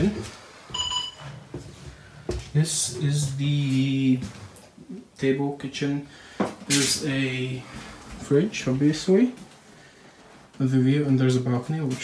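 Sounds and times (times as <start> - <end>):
short electronic beep: 0.7 - 1.3.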